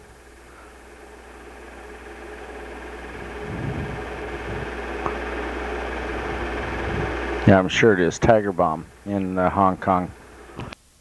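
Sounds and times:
low hum: 0:00.0 - 0:10.8.

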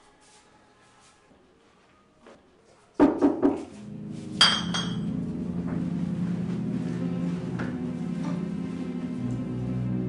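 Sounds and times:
low background music: 0:03.4 - 0:10.0
glass clink: 0:04.4 - 0:05.1.

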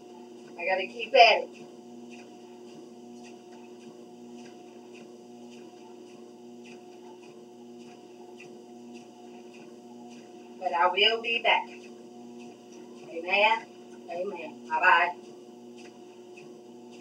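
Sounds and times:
treadmill motor hum: 0:00.0 - 0:17.0.

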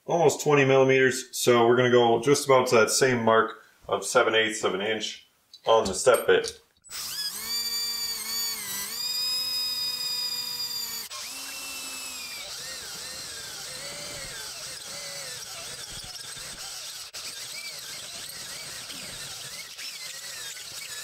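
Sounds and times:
power drill cutting metal: 0:06.8 - 0:21.0.

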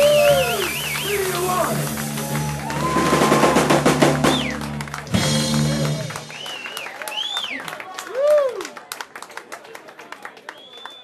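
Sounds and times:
drum fill with cymbals: 0:00.0 - 0:06.6
live rock band playing: 0:00.0 - 0:06.8
crowd whooping: 0:00.0 - 0:08.8.

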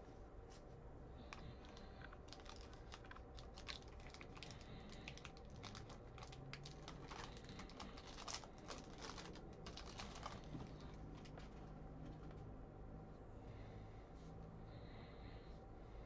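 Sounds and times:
foil pack tearing: 0:01.7 - 0:10.6.

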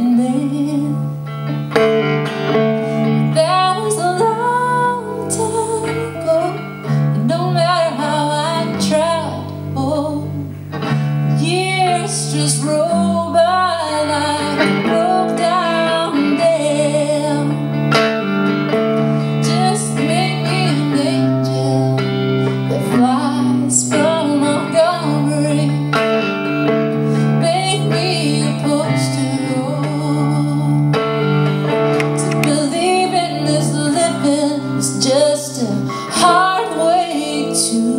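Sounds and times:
woman singing slow song: 0:00.0 - 0:01.7, 0:03.0 - 0:18.6, 0:19.2 - 0:37.9
electric guitar: 0:00.0 - 0:37.9.

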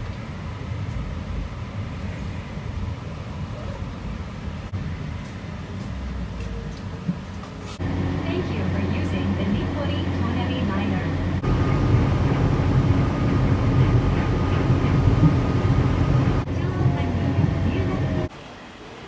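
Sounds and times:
train car low rumble: 0:00.0 - 0:18.8.

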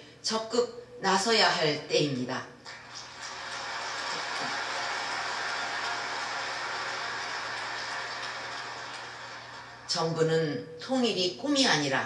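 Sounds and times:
audience applauding: 0:02.7 - 0:10.0.

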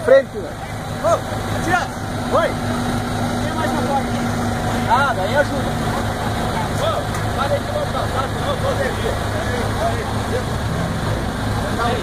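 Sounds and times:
vehicle engine running at low revs: 0:00.0 - 0:12.0.

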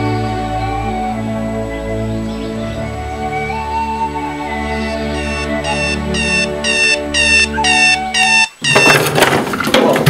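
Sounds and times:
held music chord: 0:00.0 - 0:08.4
alarm clock beeping: 0:04.9 - 0:09.1
desk and chair clattering: 0:08.6 - 0:10.0.

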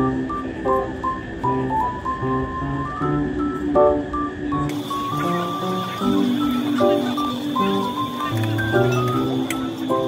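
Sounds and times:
light melodic background music: 0:00.0 - 0:10.0.

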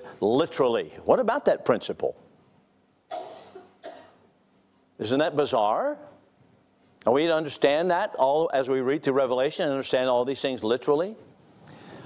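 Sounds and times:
person coughing: 0:03.1 - 0:04.2.

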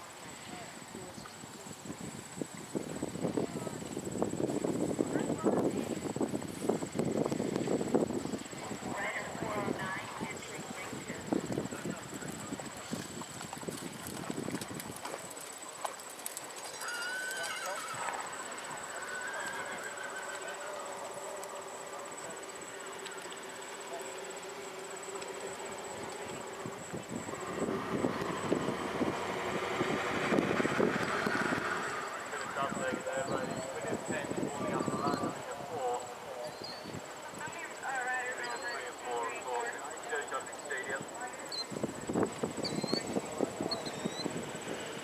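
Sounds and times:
high insect trill: 0:00.0 - 0:45.0
people talking: 0:05.1 - 0:06.0, 0:08.6 - 0:13.1, 0:32.2 - 0:41.6
horse trotting on sand: 0:10.3 - 0:19.0
horse whinnying: 0:16.7 - 0:21.1.

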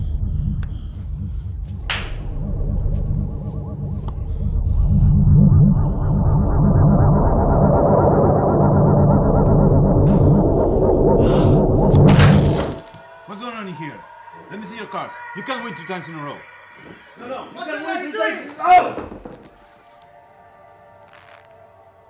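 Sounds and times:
low rumbling film score drone: 0:00.0 - 0:17.6
high sustained tones: 0:02.2 - 0:18.5.

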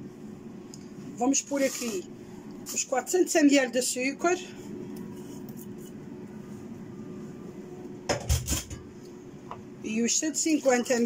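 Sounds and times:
kitchenware knocking and clattering: 0:08.1 - 0:08.9.

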